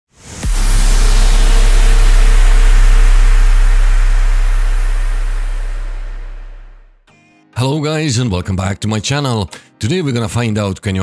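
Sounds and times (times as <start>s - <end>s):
cinematic boom with deep rumble: 0.2s - 7.0s.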